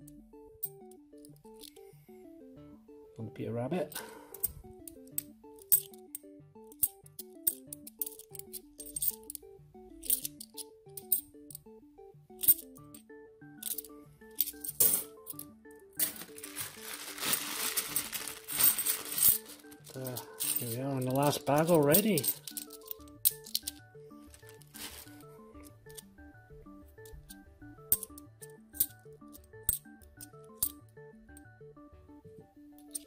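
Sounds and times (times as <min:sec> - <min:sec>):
background music melody: 0:00.0 - 0:33.0
coins clinking: 0:00.1 - 0:01.8, 0:03.9 - 0:09.4, 0:10.0 - 0:11.6, 0:12.3 - 0:26.2, 0:27.0 - 0:30.8, 0:32.8 - 0:33.0
plastic bag of coins rustling: 0:16.0 - 0:26.0.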